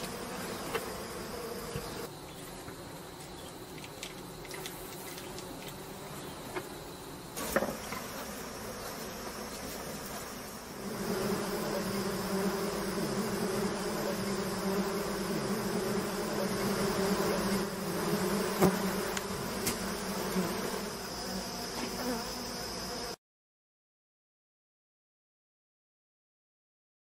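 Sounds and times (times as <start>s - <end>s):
bees buzzing: 0.0s - 23.2s.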